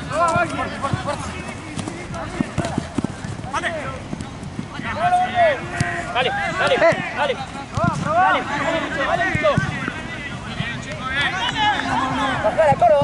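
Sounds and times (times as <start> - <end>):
players shouting: 0.0 - 13.0
running footsteps: 0.0 - 13.0.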